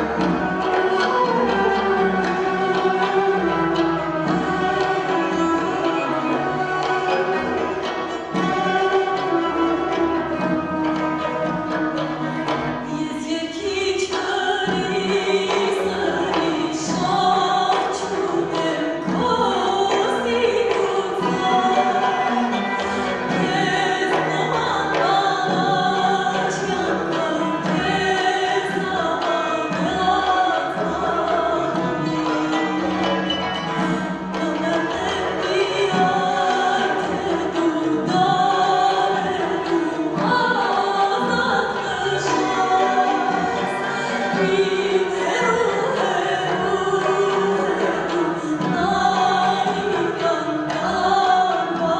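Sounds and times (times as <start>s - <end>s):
folk instrument ensemble: 0.0s - 51.9s
woman singing folk song: 12.8s - 32.7s, 33.8s - 51.9s.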